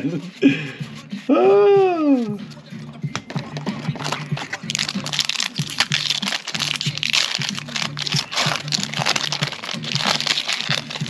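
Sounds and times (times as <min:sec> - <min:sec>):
background music with bass line: 0:00.0 - 0:11.0
foil wrapper crinkling: 0:03.9 - 0:11.0.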